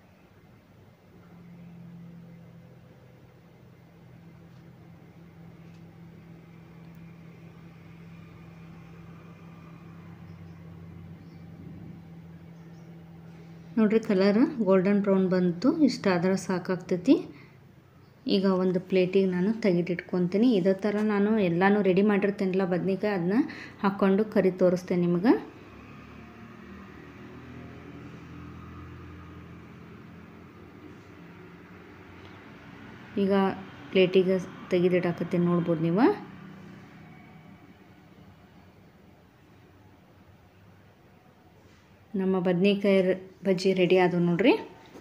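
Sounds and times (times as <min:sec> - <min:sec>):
low hum: 0:00.0 - 0:45.0.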